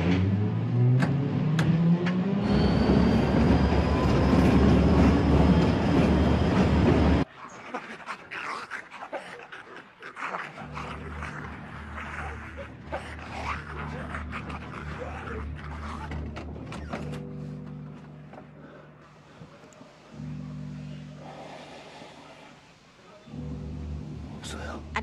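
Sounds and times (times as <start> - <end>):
diesel locomotive engine revving: 0.0 - 7.3
growling and snarling: 7.4 - 17.0.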